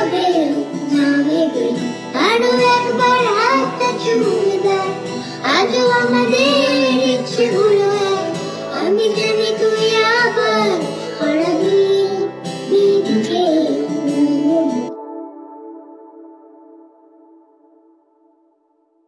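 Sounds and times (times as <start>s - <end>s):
girl singing: 0.0s - 14.9s
guitar accompaniment: 0.0s - 16.8s.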